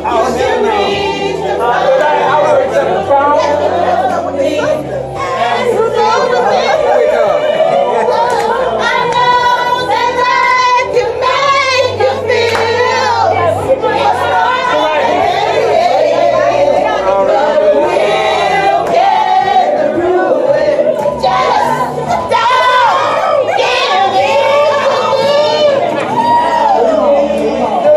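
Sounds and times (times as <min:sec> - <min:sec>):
group of people singing: 0:00.0 - 0:27.9
loud overlapping chatter: 0:00.0 - 0:27.9.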